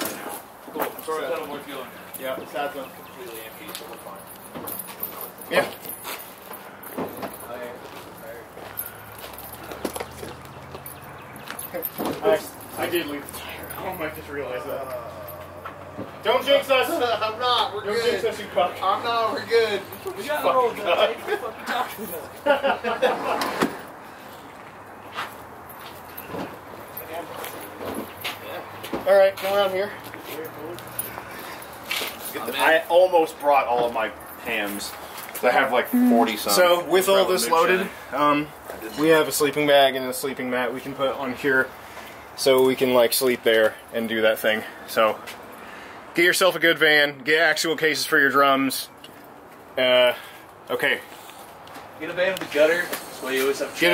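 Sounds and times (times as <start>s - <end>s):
outdoor ambience: 0.0s - 53.9s
faint background speech: 35.5s - 37.0s.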